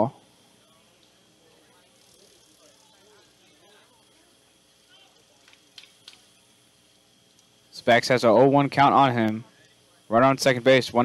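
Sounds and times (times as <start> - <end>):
faint distant voices: 0.0 - 7.2.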